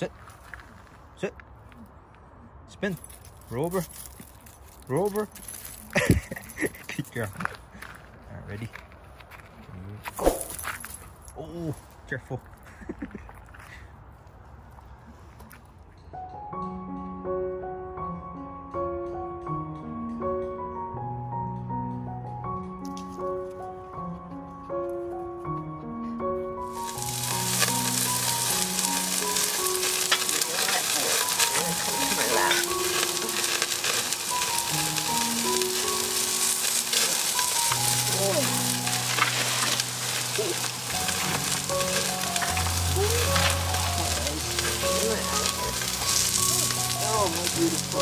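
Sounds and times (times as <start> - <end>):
piano music: 16.0 - 48.0
fine crackles: 26.7 - 48.0
meat sizzling on grill: 26.7 - 48.0.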